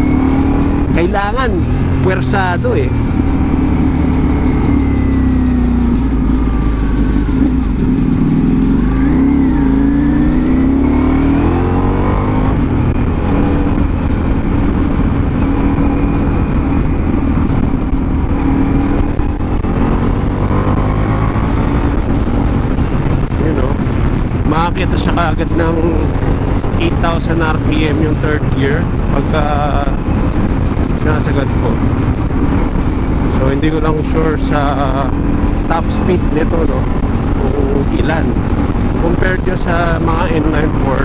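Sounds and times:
motorcycle engine under way: 0.0 - 41.0
wind noise on microphone: 7.7 - 41.0.

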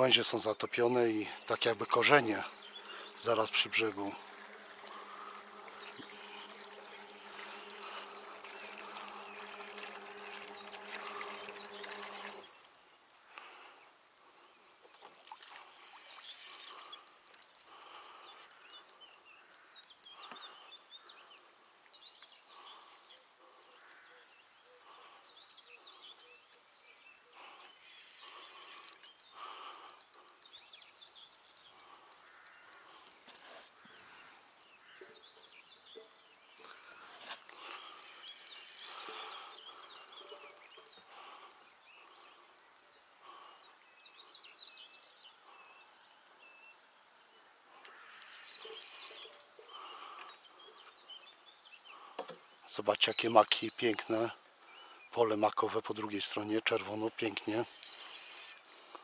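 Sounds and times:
steady low buzz: 2.0 - 12.5
short chirps and calls: 47.9 - 51.0, 57.4 - 58.9.

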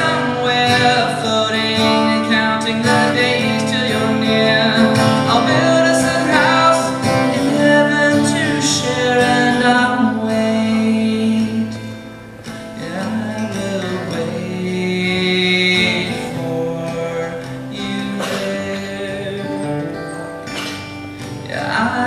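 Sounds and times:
man singing: 0.0 - 11.9, 12.8 - 20.2, 21.4 - 22.0
acoustic guitar strumming: 0.0 - 22.0.

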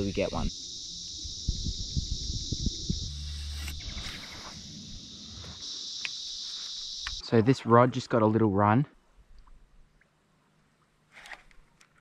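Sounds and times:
faint ticks: 6.0 - 7.2.

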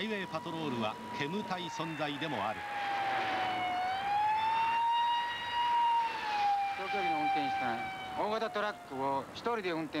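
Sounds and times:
police siren wailing: 0.0 - 9.3.

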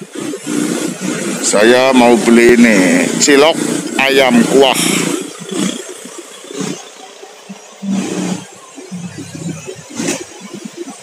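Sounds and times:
traffic: 0.0 - 11.0.

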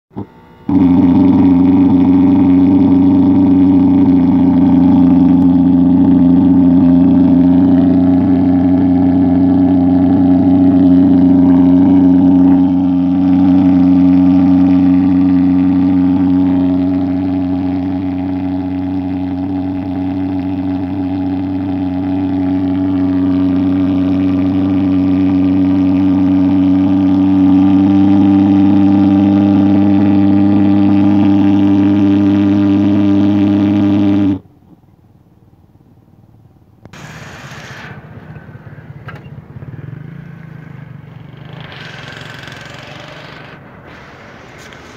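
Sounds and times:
pulse-jet engine droning: 0.1 - 34.4.

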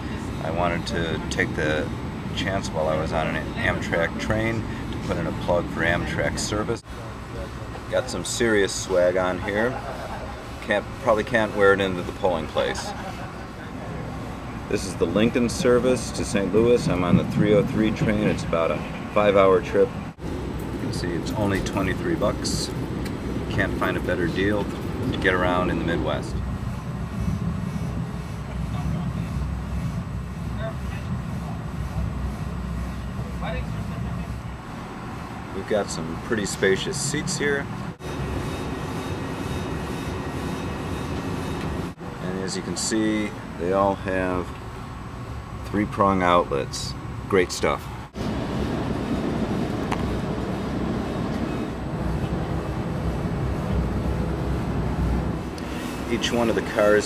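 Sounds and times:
train coach rumble: 0.0 - 44.6, 47.9 - 57.0
faint voices: 32.9 - 34.8.

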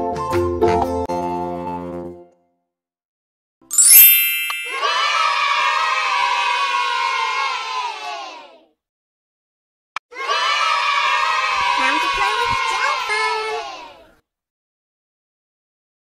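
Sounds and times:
bright chime: 3.7 - 5.2
children cheering: 4.6 - 8.6, 10.1 - 14.1.

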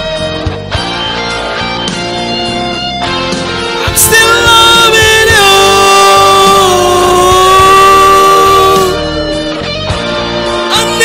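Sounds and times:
rock band backing: 0.0 - 11.0
man singing a long high note: 3.8 - 9.3, 10.7 - 11.0.

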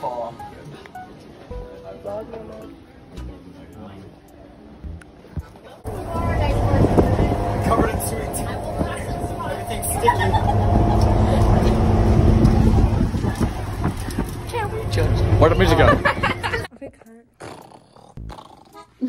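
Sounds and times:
bus engine and road rumble: 4.8 - 16.7.

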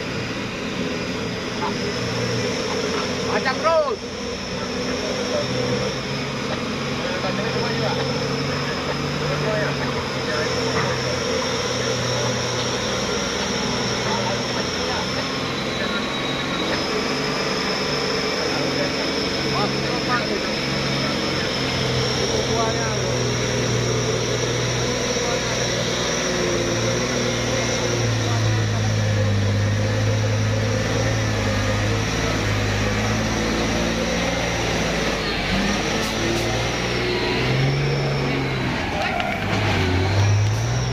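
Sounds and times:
diesel truck engine under load: 0.0 - 40.9.

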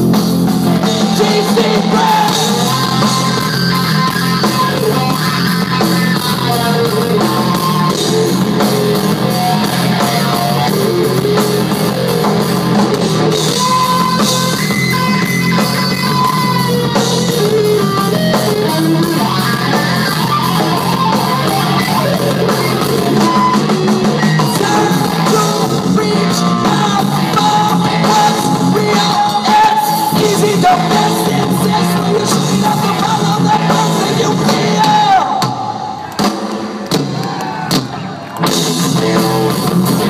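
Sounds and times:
bass guitar: 0.0 - 36.3, 36.9 - 40.0
drum kit: 0.0 - 40.0
electric guitars: 0.0 - 40.0
rock band playing live: 0.0 - 40.0.

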